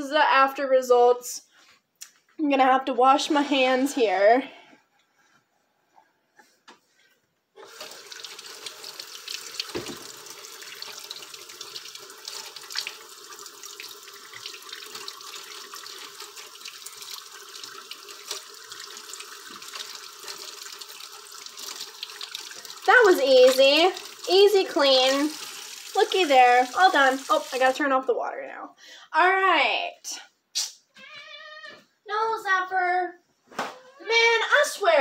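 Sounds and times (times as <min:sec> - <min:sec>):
hand rinsed under stream: 0:07.6 - 0:27.8
faucet water running: 0:07.6 - 0:28.6.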